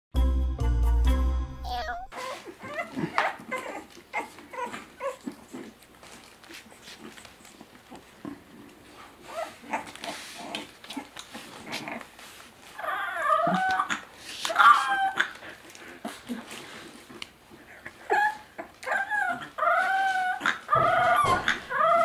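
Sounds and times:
puppy yipping and whimpering: 1.8 - 5.8, 9.2 - 10.0, 12.7 - 15.4, 17.9 - 22.0
puppy howling: 12.8 - 15.4, 18.1 - 22.0.

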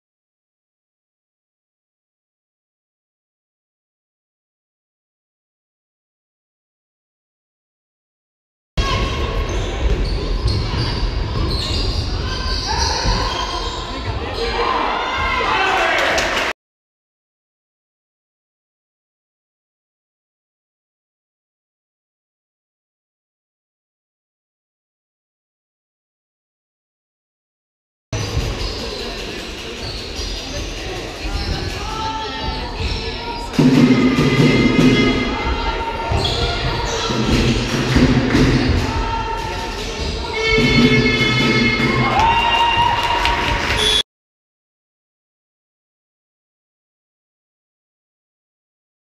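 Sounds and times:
players' voices: 8.8 - 16.5, 28.2 - 44.0
basketball bouncing on wooden court: 9.0 - 13.8
music: 33.6 - 35.7, 37.0 - 43.8.

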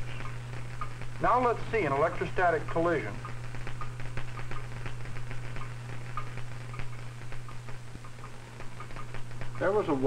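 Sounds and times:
faint crackling ticks: 0.0 - 10.0
low hum: 0.0 - 10.0.

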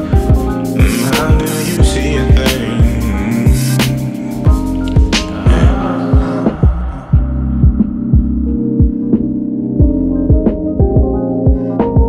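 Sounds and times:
held low synth chord: 0.0 - 11.4
deep kick drums: 0.1 - 3.8, 4.5 - 12.0.

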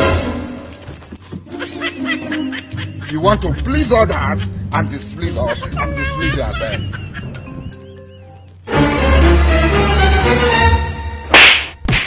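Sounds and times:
loud whip crack: 11.3 - 12.0
sharp smack: 11.3 - 12.0.

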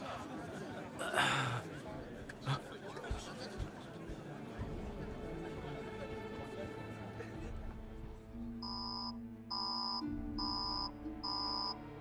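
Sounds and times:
soft background music: 2.1 - 12.0
short electronic beeps: 8.6 - 11.8.

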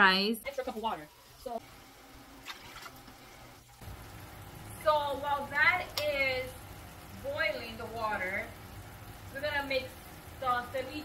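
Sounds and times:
faint running water: 0.0 - 11.0
low steady hum: 0.0 - 11.0.

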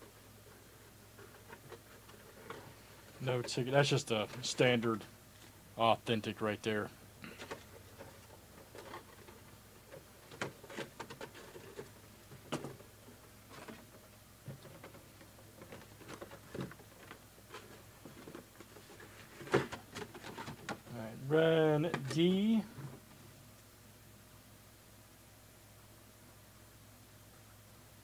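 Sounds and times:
light clicks and rustles of handling: 0.0 - 5.6, 6.3 - 21.0.

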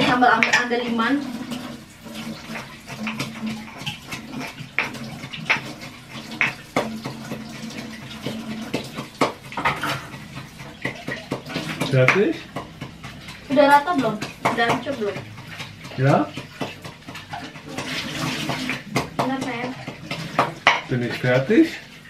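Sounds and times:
tap running water: 0.0 - 22.0.

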